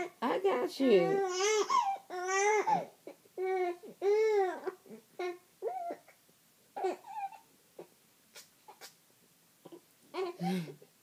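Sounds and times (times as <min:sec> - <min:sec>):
baby crying: 0:01.0 - 0:06.2, 0:06.8 - 0:07.5.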